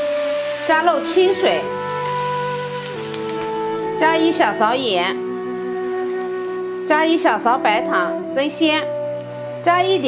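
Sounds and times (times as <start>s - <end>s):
water splashing into wok: 0.0s - 4.0s
soft background music: 0.0s - 10.0s.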